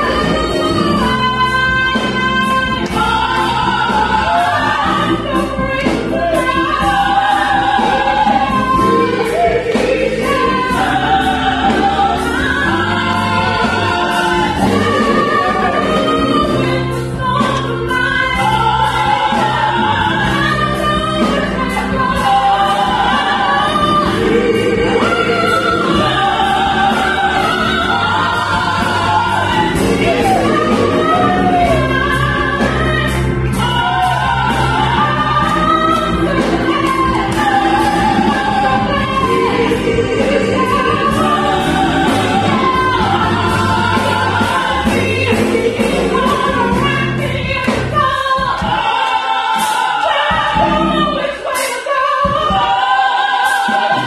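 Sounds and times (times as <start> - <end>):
sustained keyboard chords: 0.0 - 48.8
bass: 0.0 - 54.0
women singing gospel in harmony: 0.0 - 54.0.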